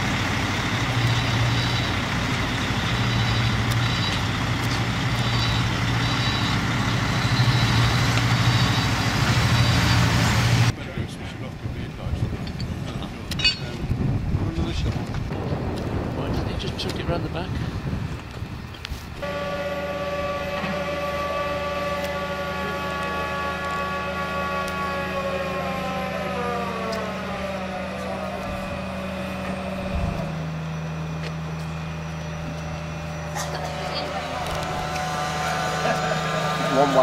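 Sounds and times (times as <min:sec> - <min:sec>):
hydraulic whine: 0:00.0 - 0:10.8, 0:14.5 - 0:37.0
crane engine low hum: 0:00.0 - 0:37.0.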